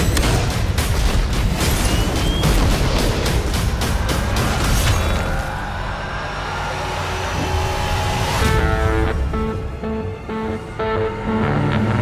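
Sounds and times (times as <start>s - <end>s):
sustained musical notes: 7.3s - 12.0s.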